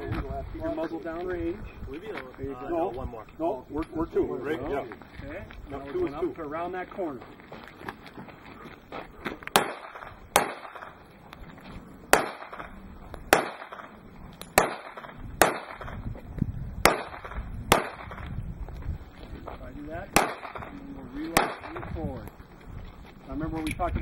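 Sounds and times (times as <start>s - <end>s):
handgun shots with echo: 9.5s - 11.0s, 12.1s - 12.7s, 13.3s - 16.0s, 16.8s - 18.3s, 20.1s - 20.8s, 21.4s - 21.9s.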